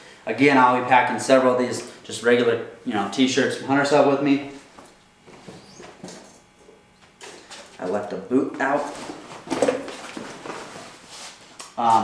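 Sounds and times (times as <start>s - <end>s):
rustles and knocks in bag: 8.8s - 11.0s.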